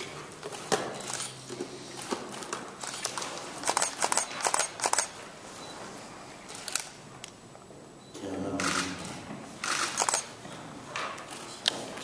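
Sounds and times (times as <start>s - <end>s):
camera shutters clicking: 2.3s - 5.2s, 6.5s - 7.0s, 8.6s - 9.0s, 9.6s - 10.3s.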